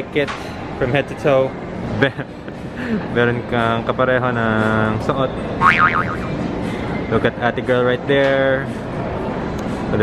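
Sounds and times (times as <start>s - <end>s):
indoor crowd noise: 0.0s - 10.0s
cartoon boing sound effect: 5.6s - 6.4s.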